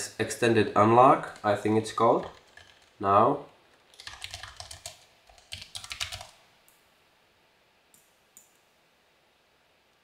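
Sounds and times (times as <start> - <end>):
typing on computer keyboard: 1.3 - 3.0, 3.7 - 6.4.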